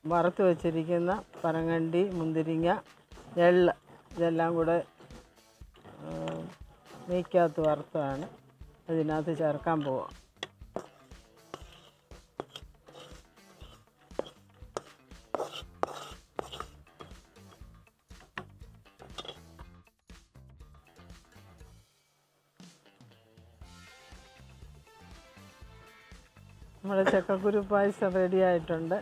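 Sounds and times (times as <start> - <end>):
metal spoon stirring in clay pot: 0.0 - 19.7
soft background music: 0.0 - 29.0
wooden spatula scraping metal pan: 0.1 - 8.4, 9.0 - 19.6.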